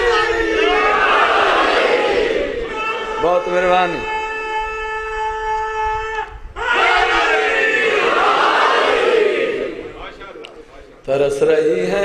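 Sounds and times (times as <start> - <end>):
crowd of men shouting: 0.0 - 6.0, 6.6 - 10.0
man's long high slogan cry: 2.6 - 7.2.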